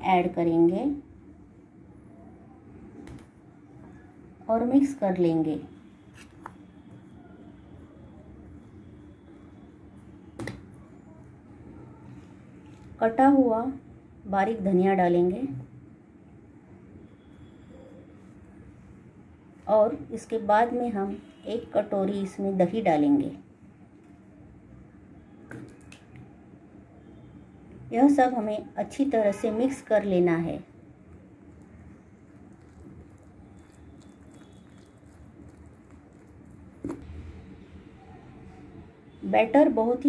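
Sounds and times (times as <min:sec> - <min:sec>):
curd squelching onto flour: 0:31.0 - 0:37.1.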